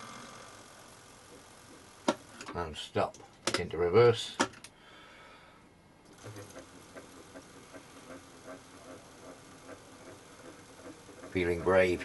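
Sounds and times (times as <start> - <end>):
milling machine spindle turning: 6.1 - 12.0.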